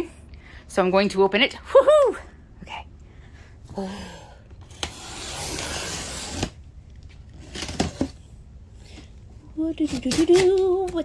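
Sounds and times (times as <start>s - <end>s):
box cutter slicing packing tape: 4.7s - 6.6s, 7.4s - 8.2s, 9.8s - 11.0s.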